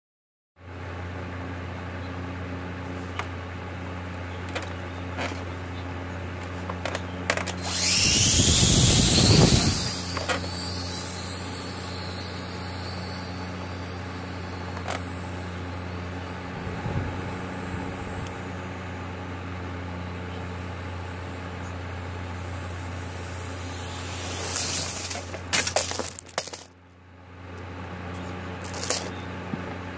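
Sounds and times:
steady low hum: 0:00.6 - 0:29.9
quadcopter rotor whine: 0:07.3 - 0:26.7, 0:28.5 - 0:29.2.

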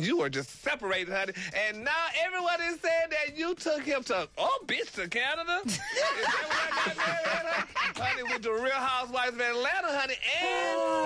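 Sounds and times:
woman laughing: 0:05.7 - 0:08.4.

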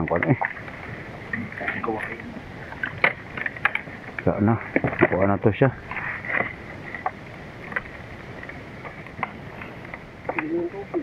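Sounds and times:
soft clicks and crackles: 0:00.0 - 0:05.3.

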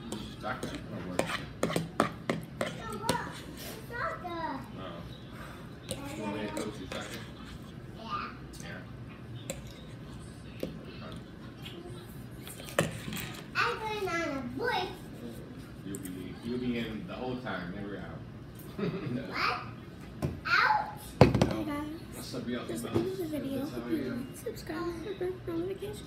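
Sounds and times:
children talking: 0:02.6 - 0:04.8, 0:05.4 - 0:08.6, 0:10.7 - 0:15.2, 0:19.2 - 0:26.0.

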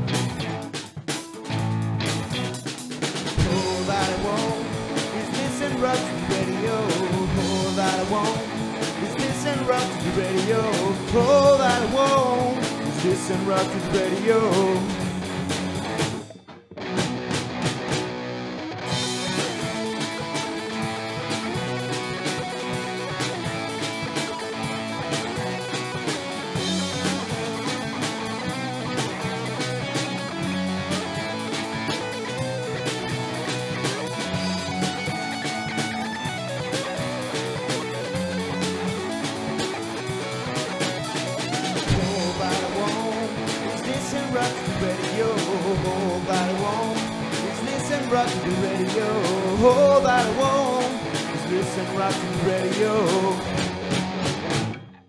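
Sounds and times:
drum kit: 0:00.0 - 0:55.0
electric guitar: 0:00.0 - 0:55.0.

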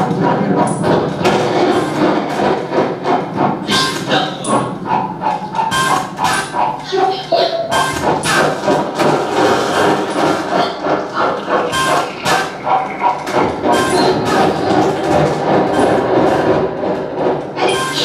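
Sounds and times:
experimental noise music: 0:00.0 - 0:18.0.

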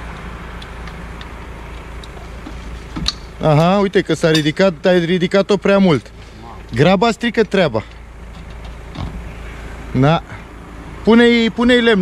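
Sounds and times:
vehicle engine idling: 0:00.0 - 0:12.0.

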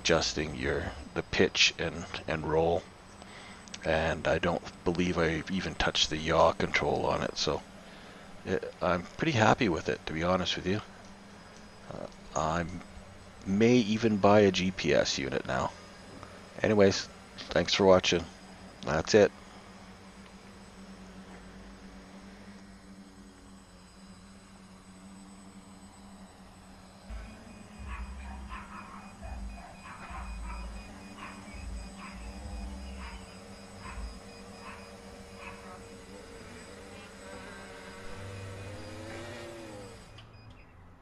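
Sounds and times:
quadcopter motors buzzing: 0:00.0 - 0:41.0.

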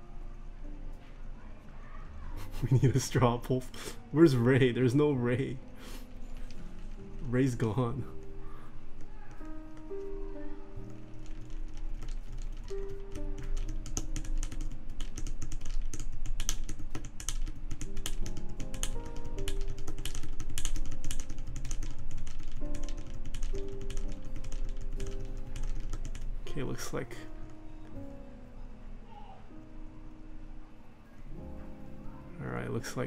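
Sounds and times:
background music: 0:00.0 - 0:33.0
keyboard typing clacks: 0:10.8 - 0:26.2.

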